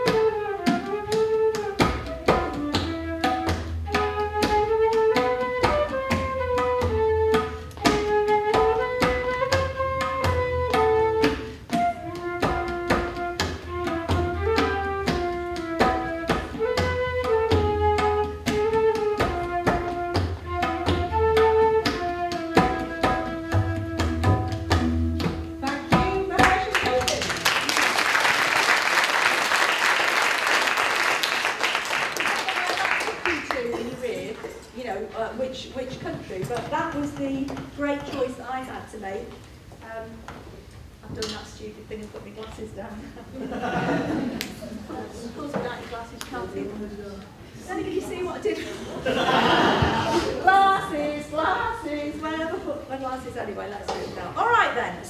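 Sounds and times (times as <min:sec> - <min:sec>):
flute melody: 0:00.0 - 0:25.7
deep bass-drum tones: 0:22.4 - 0:27.0
audience applause: 0:27.1 - 0:33.7.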